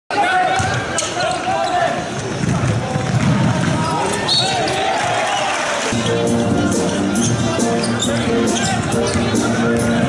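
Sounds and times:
crowd noise: 0.1 - 10.0.

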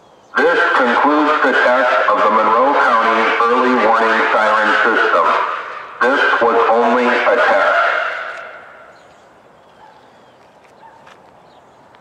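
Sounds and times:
man's voice over loudspeaker: 0.3 - 8.8.

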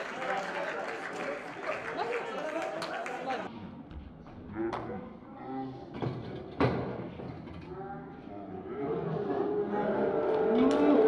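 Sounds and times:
shouting voices in a stadium: 0.0 - 3.5, 9.3 - 11.0.

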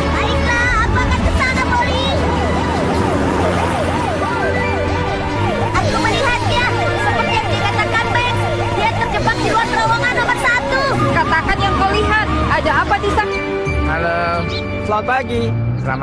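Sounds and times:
siren in fast yelp: 1.4 - 13.4.

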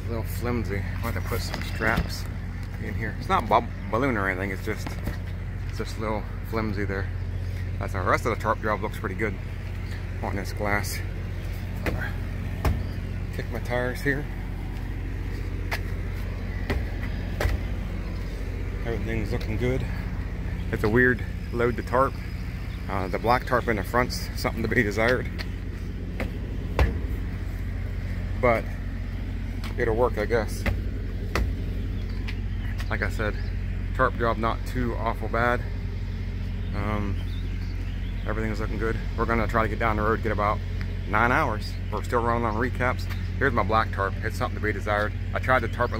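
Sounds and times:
truck engine idling: 0.0 - 45.9
sharp knocks: 11.8 - 13.0, 16.6 - 17.8, 26.1 - 27.1, 30.6 - 31.6.

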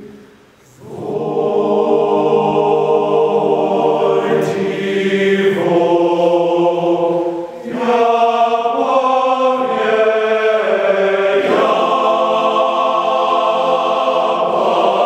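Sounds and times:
men's choir singing chords: 0.0 - 15.0.

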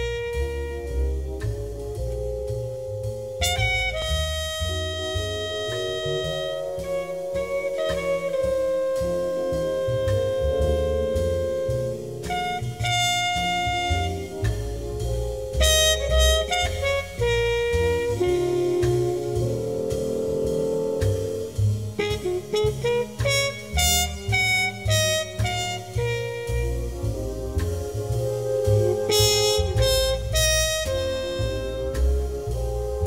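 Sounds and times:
instrumental background music: 0.0 - 33.0.

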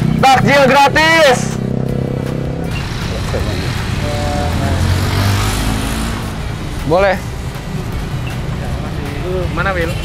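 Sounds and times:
motorcycle engine running: 0.0 - 6.8.

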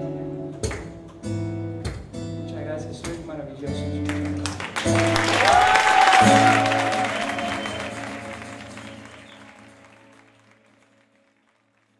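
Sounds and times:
acoustic guitar strumming: 3.7 - 10.0
applause: 4.0 - 11.9.

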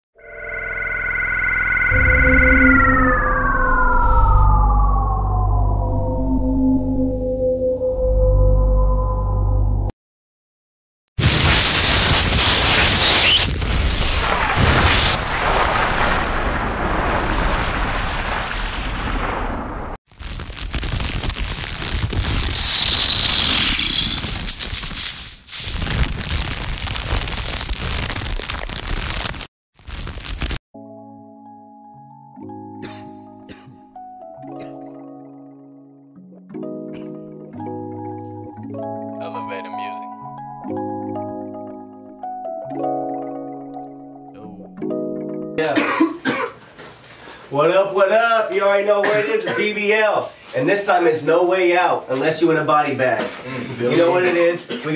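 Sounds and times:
high two-tone synth whine: 0.2 - 9.9
low synth rumble: 1.0 - 9.9.

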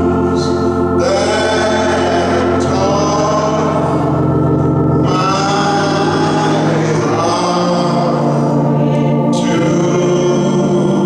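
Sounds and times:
gospel choir singing: 0.0 - 11.0
organ: 0.0 - 11.0.

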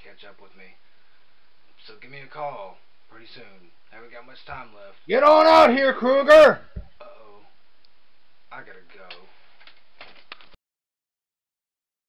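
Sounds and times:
man's voice: 4.2 - 7.1.

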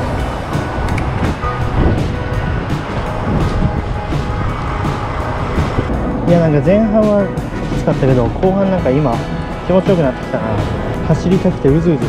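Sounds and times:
background music with steady beat: 0.0 - 12.0
street traffic noise: 0.0 - 12.0
wind rumble on microphone: 0.0 - 12.0.

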